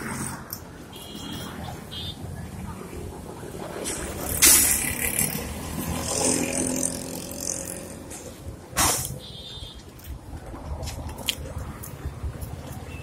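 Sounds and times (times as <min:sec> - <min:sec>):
passing vehicles: 0:00.0 - 0:13.0.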